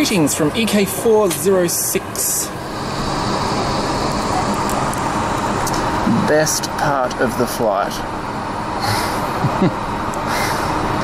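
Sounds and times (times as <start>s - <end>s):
jet engine and airflow in cabin: 0.0s - 11.0s.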